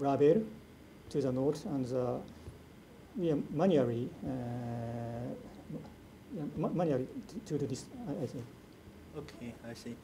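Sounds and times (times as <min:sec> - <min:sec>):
man saying uhh: 0:04.2 - 0:05.5.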